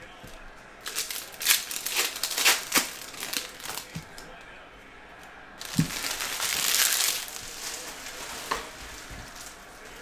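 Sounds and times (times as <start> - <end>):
cards and wrappers rustling: 0.2 - 4.2, 5.6 - 10.0.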